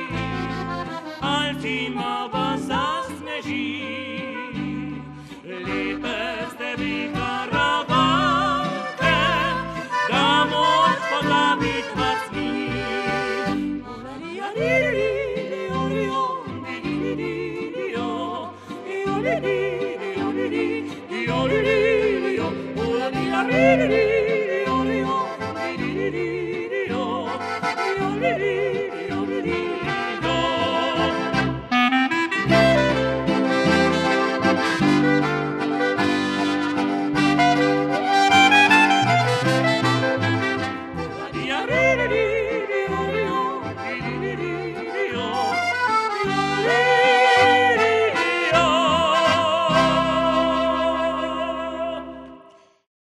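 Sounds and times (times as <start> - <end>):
man and woman singing duet: 0.0 - 31.8, 41.0 - 52.5
double bass: 0.0 - 52.4
clarinet: 0.0 - 52.7
accordion: 0.0 - 52.9
trumpet: 29.8 - 41.6, 46.2 - 51.4
guitar and band accompaniment: 31.3 - 41.2.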